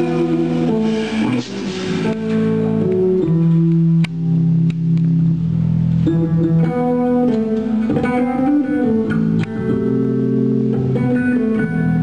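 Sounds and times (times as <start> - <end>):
rock band playing: 0.0 - 5.3, 6.0 - 12.0
electric guitar held notes: 0.0 - 12.0.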